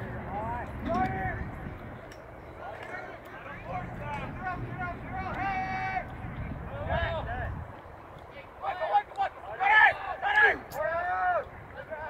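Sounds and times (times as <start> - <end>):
people shouting: 8.6 - 11.5.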